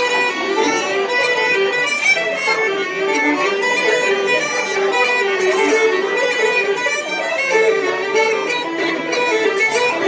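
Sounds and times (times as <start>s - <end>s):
fiddles playing a fast reel: 0.0s - 10.0s.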